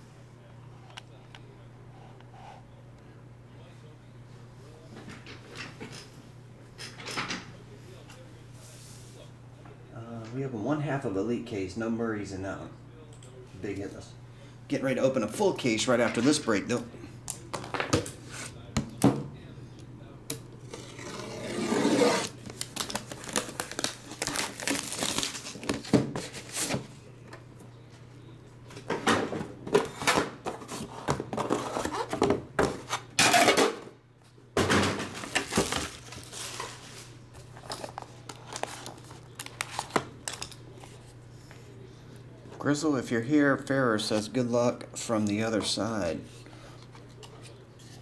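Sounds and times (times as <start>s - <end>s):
plastic shrink-wrap tearing: 21.9s - 26.6s.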